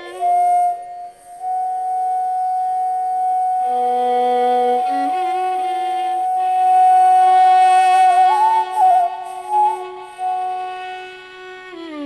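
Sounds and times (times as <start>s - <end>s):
bamboo flute long note: 0.0s - 12.0s.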